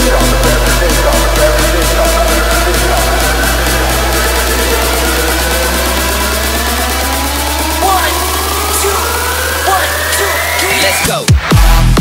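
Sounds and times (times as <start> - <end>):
rising synth riser tone: 0.0 - 11.0
electronic dance music: 0.0 - 12.0.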